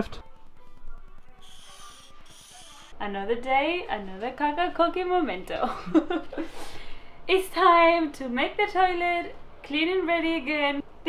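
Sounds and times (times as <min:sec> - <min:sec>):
faint background music: 0:00.0 - 0:11.0
felt-tip marker scratching paper: 0:00.9 - 0:02.9.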